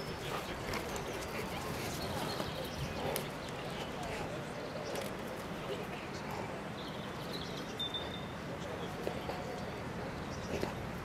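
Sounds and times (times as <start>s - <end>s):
crowd murmuring: 0.0s - 11.0s.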